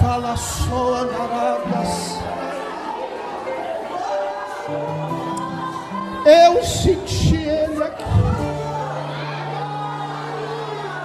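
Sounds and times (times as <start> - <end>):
keyboard chords: 0.0 - 11.0.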